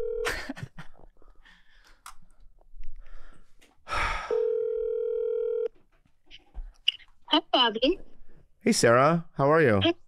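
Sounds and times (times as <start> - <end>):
telephone ringback tone: 0.0 - 0.2, 4.3 - 5.7.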